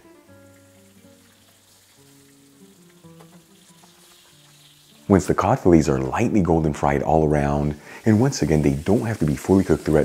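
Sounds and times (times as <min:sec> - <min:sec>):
fish sizzling in oil: 0:00.0 - 0:06.1, 0:07.3 - 0:10.0
soft background music: 0:00.0 - 0:10.0.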